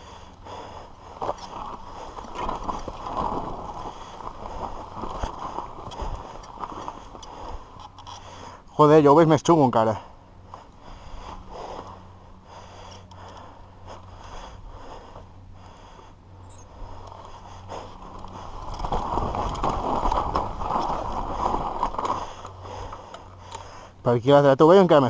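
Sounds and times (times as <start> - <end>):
bike tyres scraping over dirt: 0.0 - 16.0, 16.7 - 23.9
bike rattling and knocking: 0.5 - 8.3, 16.8 - 23.6.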